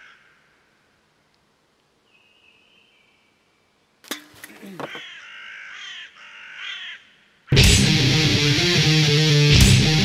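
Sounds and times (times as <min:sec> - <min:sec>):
crow cawing: 0:00.0 - 0:00.7, 0:04.7 - 0:07.7.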